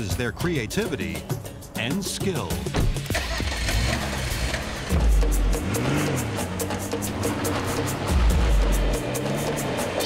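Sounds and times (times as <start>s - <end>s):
background music: 0.0s - 10.0s
car engine starting and running: 2.6s - 10.0s.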